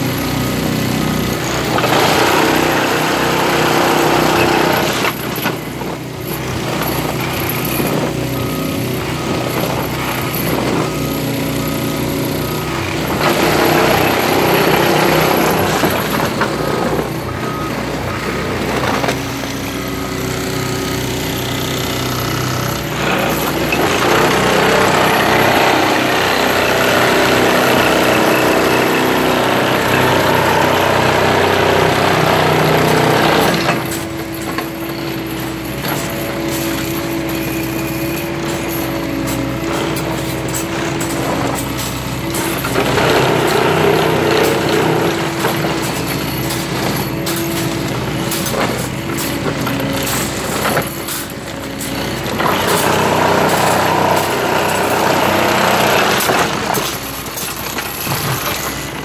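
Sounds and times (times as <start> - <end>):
engine drone: 0.0 - 59.0
tamping tines rattling: 0.0 - 59.0.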